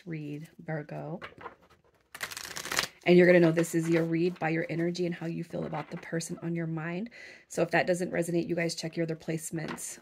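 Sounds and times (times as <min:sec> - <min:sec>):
cards riffling: 0:01.5 - 0:03.0.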